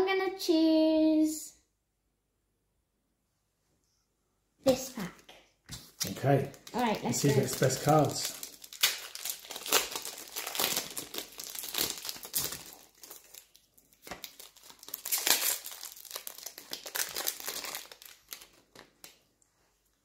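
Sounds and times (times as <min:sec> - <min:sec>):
foil wrappers crinkling: 0:05.8 - 0:19.2.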